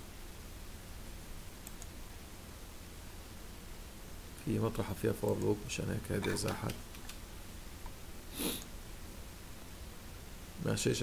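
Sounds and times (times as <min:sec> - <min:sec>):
faint low hum: 0:00.0 - 0:11.0
nose sniff: 0:08.3 - 0:08.7.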